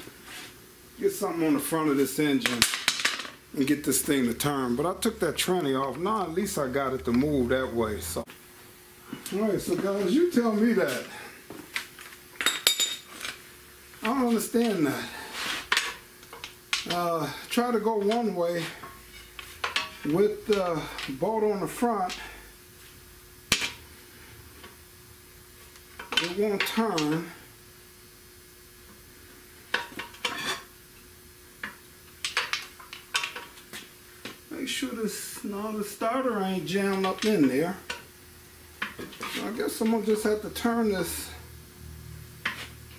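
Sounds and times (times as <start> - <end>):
metal tools clinking: 12.4 - 13.4.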